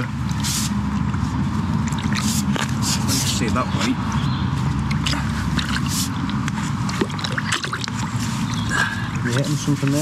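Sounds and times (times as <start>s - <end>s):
plunger sloshing in wastewater: 1.0s - 3.5s, 4.9s - 9.8s.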